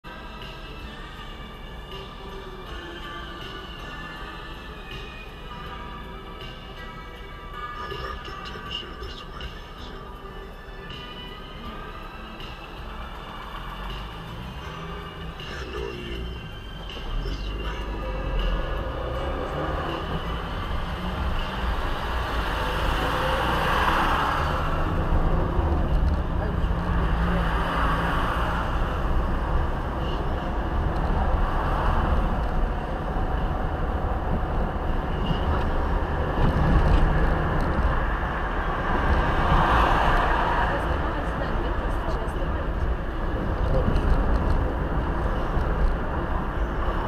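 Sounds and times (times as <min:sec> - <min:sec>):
car engine and tyre rumble: 0:00.0 - 0:47.0.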